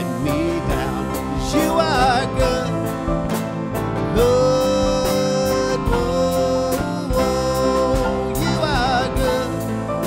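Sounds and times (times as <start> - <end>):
electric bass and band: 0.0 - 10.0
man singing: 0.0 - 10.0.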